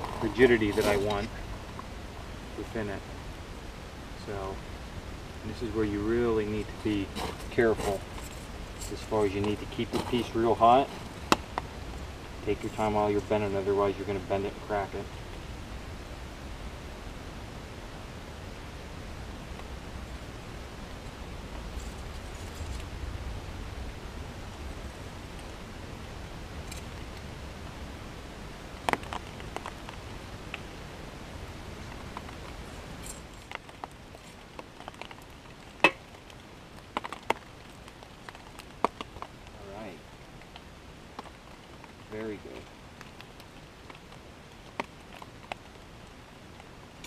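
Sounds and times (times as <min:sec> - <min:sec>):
steady low rumble: 0:00.0 - 0:47.0.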